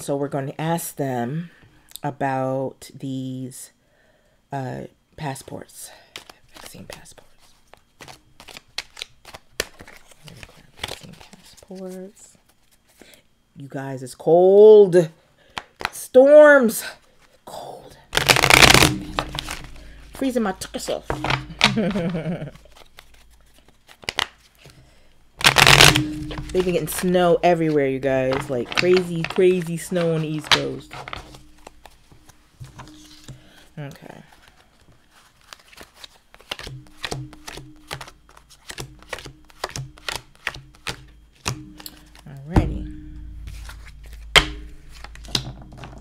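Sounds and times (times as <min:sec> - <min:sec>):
cards shuffling: 0:06.1 - 0:13.0, 0:18.1 - 0:24.8, 0:25.4 - 0:33.6, 0:34.3 - 0:42.3, 0:43.2 - 0:46.0.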